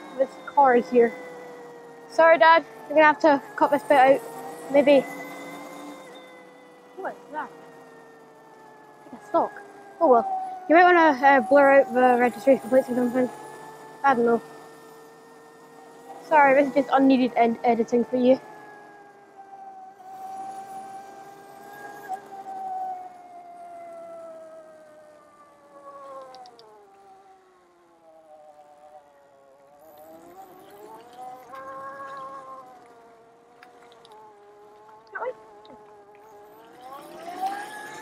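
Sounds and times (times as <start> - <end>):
electric motor whine: 0.0 - 38.0.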